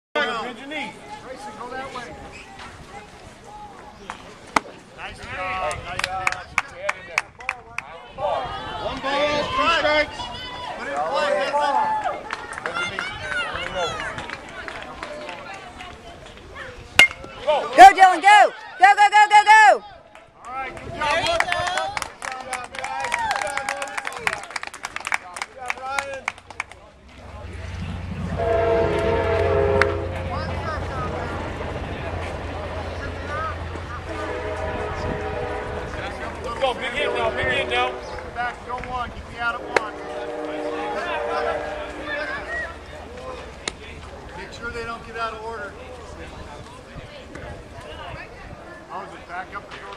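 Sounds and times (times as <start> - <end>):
hands clapping: 5.7 - 7.9, 12.2 - 16.4, 20.1 - 27.2, 38.1 - 39.0
voices calling: 25.4 - 49.9
steady low rumble: 26.9 - 44.4
multi-tone horn: 28.3 - 30.6, 34.0 - 38.3, 39.6 - 42.8.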